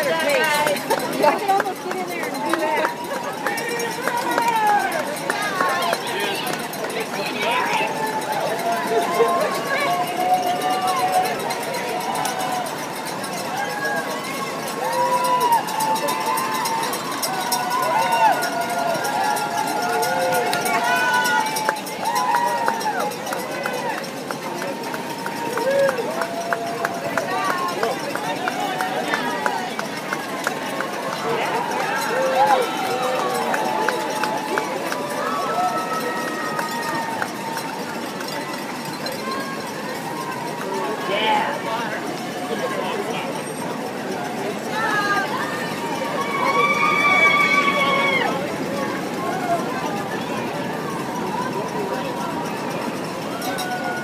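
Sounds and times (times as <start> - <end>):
runners' footsteps on pavement: 0.0 - 54.0
spectators cheering and calling out: 0.0 - 54.0.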